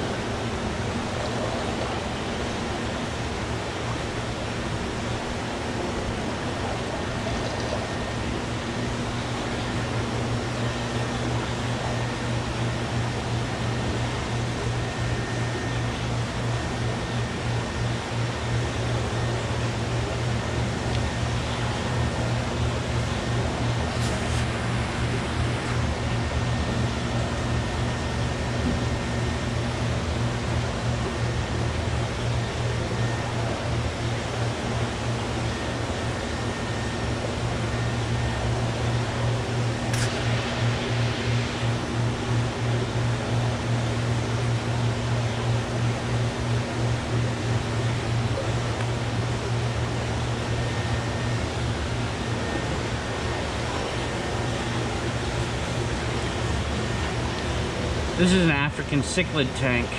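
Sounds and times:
air pumps and filters droning: 0:00.0 - 0:59.9.

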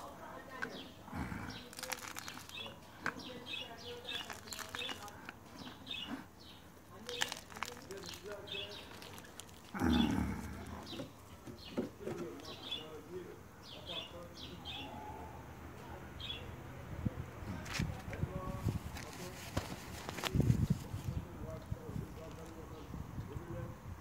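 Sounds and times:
potting soil rustling: 0:00.0 - 0:13.0, 0:17.5 - 0:22.8
small birds chirping: 0:00.0 - 0:16.7.

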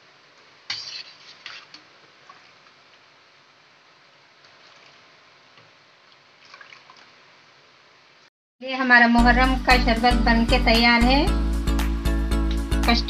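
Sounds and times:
spoon stirring thick liquid: 0:00.7 - 0:02.8.

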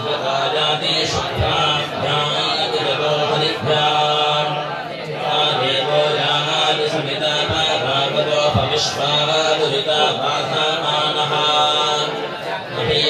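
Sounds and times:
men chanting into microphones: 0:00.0 - 0:13.0.

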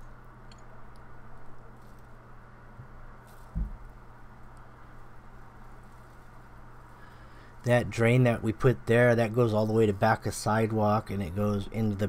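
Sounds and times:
steady low hum: 0:00.0 - 0:12.0
dull low thump: 0:03.5 - 0:03.9.

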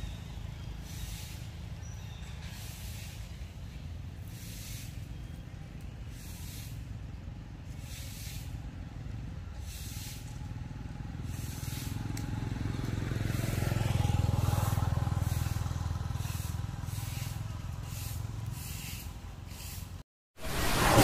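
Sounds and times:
passing vehicle engine rumble: 0:00.0 - 0:21.0.

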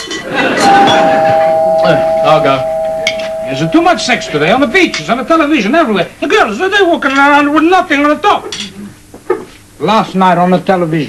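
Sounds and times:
two-note door chime: 0:00.6 - 0:05.4.

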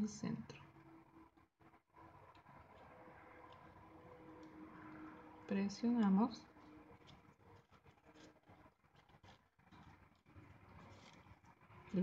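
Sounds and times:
fingers rustling satin ribbon: 0:05.8 - 0:12.0.

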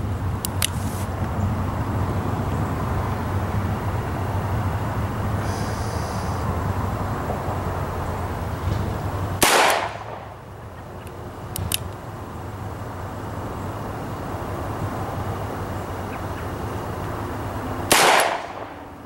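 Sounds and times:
light clicks: 0:00.4 - 0:01.4, 0:11.0 - 0:12.0
revolver gunshot: 0:09.4 - 0:10.3, 0:17.9 - 0:18.7.

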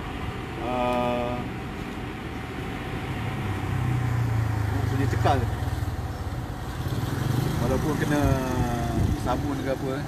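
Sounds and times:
vehicle passing with engine rumble: 0:00.0 - 0:10.0.

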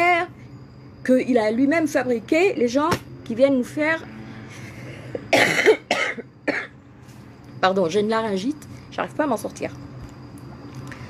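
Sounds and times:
woman coughing: 0:05.1 - 0:06.8.

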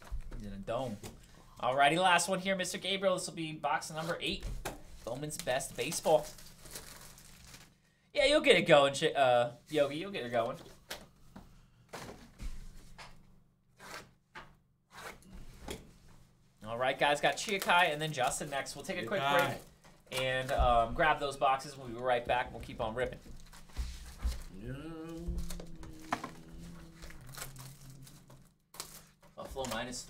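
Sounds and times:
plastic wrap crinkling and tearing: 0:05.4 - 0:07.8, 0:17.1 - 0:20.6, 0:25.3 - 0:30.0.

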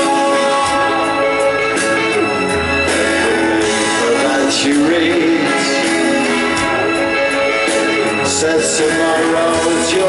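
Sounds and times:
live rock band with brass: 0:00.0 - 0:10.0.

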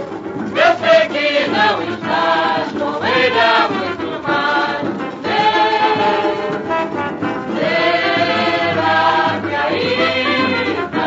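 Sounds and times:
old samba recording: 0:00.0 - 0:11.0.

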